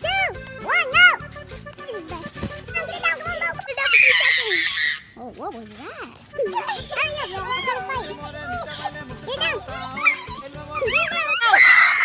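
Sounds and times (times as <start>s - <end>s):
background music: 0.0s - 12.0s
children's voices: 1.8s - 11.6s
child crying out: 3.8s - 5.2s, 9.8s - 12.0s.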